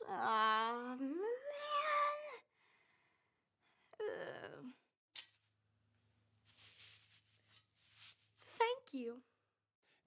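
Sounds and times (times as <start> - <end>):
child whining: 0.0 - 2.4.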